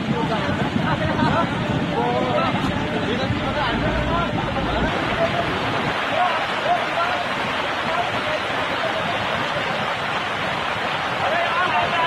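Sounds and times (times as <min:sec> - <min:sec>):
floodwater rushing down street: 0:00.0 - 0:12.0
rain falling: 0:00.0 - 0:12.0.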